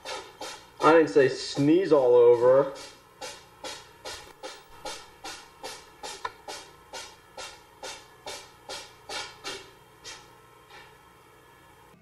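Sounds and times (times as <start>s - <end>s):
rhythmic short swishing: 0.0s - 11.0s.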